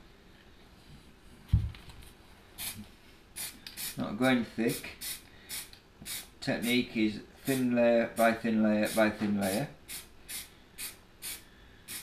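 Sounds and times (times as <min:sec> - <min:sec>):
aerosol spray can hissing: 0:03.4 - 0:04.0, 0:05.0 - 0:06.3, 0:08.8 - 0:12.0.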